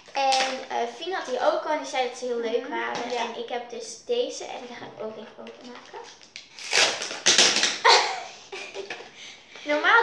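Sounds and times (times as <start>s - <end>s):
plastic packaging ripping: 0.0s - 0.7s, 5.6s - 8.0s.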